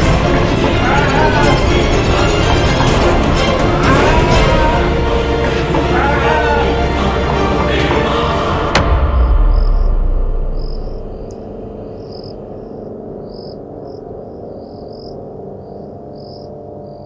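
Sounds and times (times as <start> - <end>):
low musical drone: 0.0 - 17.0
crickets chirping: 8.8 - 17.0.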